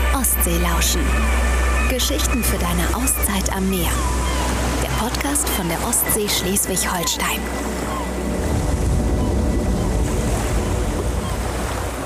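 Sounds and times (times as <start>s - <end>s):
waves rushing with deep rumble: 0.0s - 12.0s.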